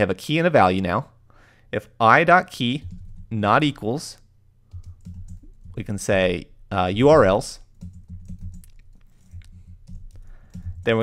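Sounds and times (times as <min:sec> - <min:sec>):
computer keyboard keystrokes: 0:04.7 - 0:05.8, 0:07.7 - 0:10.9.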